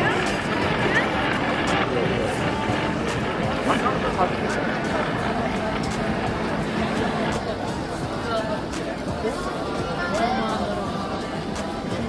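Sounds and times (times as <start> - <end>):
street noise rumble: 0.0 - 12.0
voices of passers-by: 0.0 - 12.0.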